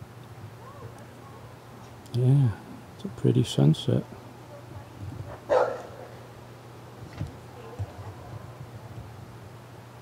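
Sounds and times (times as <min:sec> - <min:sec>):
faint low hum: 0:00.0 - 0:10.0
dog barking: 0:05.3 - 0:06.2.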